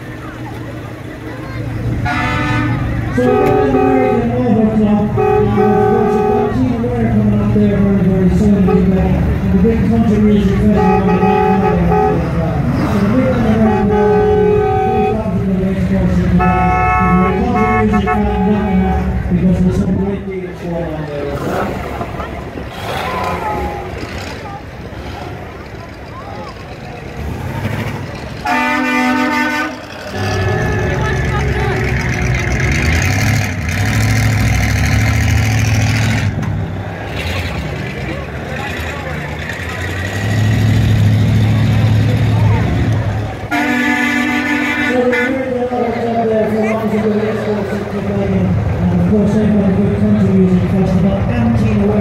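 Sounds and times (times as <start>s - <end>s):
vehicle engines rumbling: 0.0s - 52.0s
vehicle horn honking: 2.0s - 4.4s, 5.1s - 6.7s, 10.6s - 12.4s, 13.5s - 15.3s, 16.4s - 19.2s, 28.4s - 32.1s, 43.5s - 45.5s.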